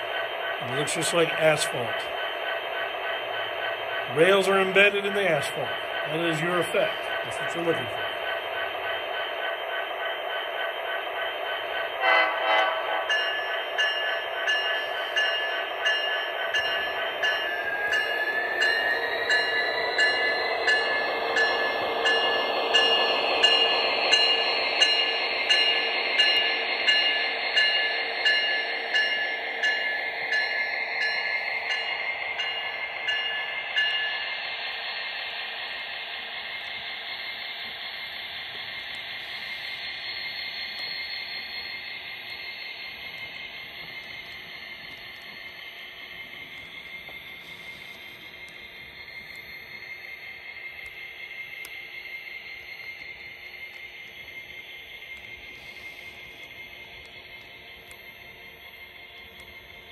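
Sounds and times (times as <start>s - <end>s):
locomotive bell ringing: 0.6s - 2.2s, 3.9s - 9.0s, 11.8s - 34.7s.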